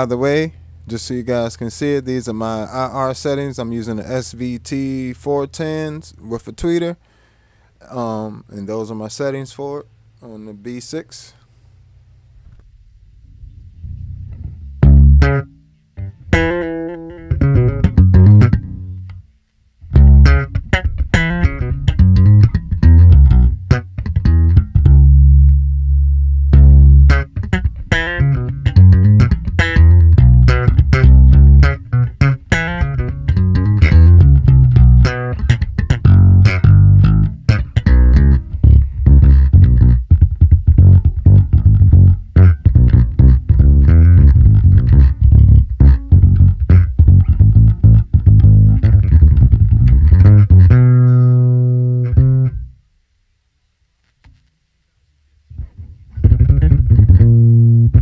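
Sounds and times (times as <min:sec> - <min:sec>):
electric bass played with fingers: 0:12.4 - 0:52.8, 0:55.5 - 0:58.0.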